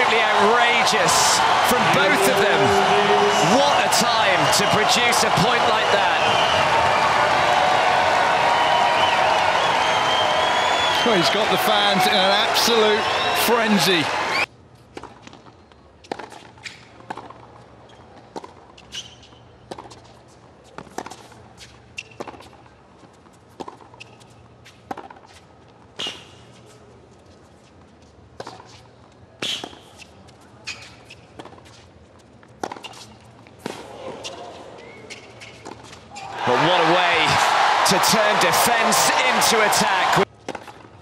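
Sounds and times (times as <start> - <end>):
crowd noise: 0.0 - 14.5, 36.1 - 40.3.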